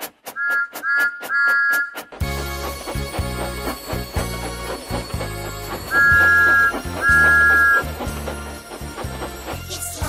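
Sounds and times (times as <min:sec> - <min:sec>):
bouncy instrumental music: 0:00.6 - 0:10.0
steam locomotive whistle blasts: 0:05.9 - 0:08.0.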